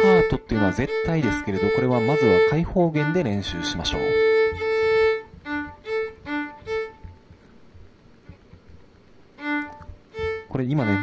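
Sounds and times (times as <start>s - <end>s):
violin staccato notes: 0.0s - 11.0s.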